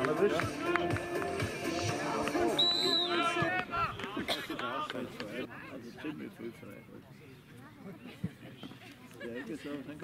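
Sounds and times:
referee's whistle blast: 2.6 - 3.4.

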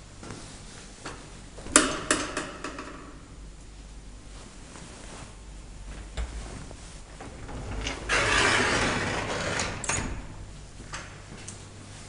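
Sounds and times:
elevator sliding doors running: 5.9 - 11.8.

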